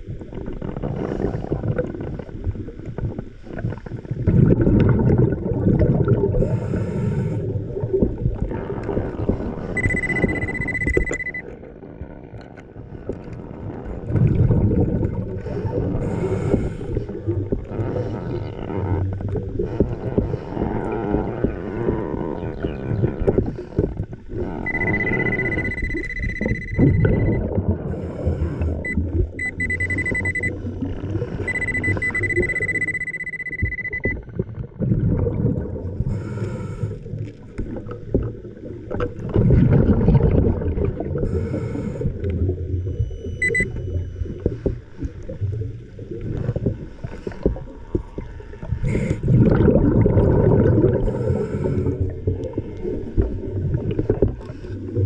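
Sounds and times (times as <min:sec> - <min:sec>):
muffled underwater rumbling: 0:00.0 - 0:55.0
high electronic tone: 0:09.8 - 0:11.4, 0:24.7 - 0:27.5, 0:28.8 - 0:30.6, 0:31.4 - 0:34.2, 0:43.2 - 0:44.0.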